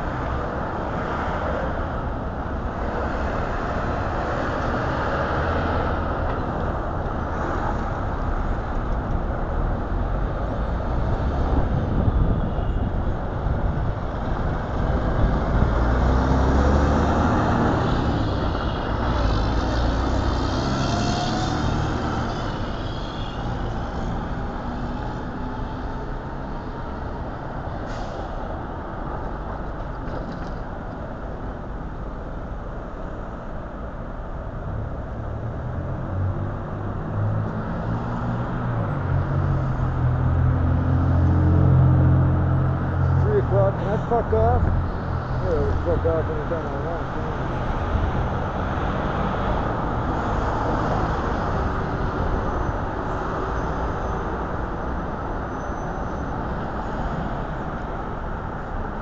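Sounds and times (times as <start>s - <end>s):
vehicle engines passing: 0.0s - 59.0s.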